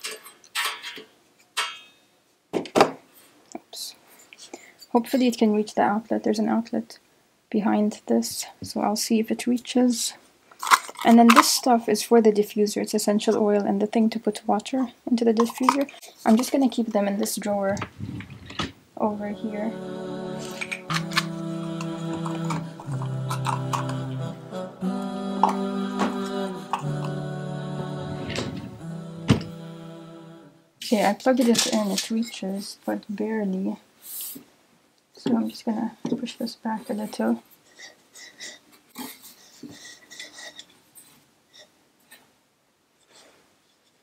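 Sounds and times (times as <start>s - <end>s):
small bottles clicking: 10.6s - 11.7s
vocal-only religious singing: 19.0s - 30.8s.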